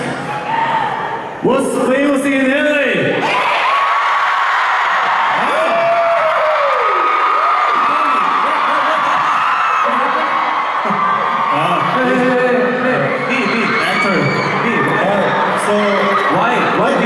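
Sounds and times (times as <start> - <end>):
crowd screaming and shouting: 0.0 - 1.4, 3.2 - 17.0.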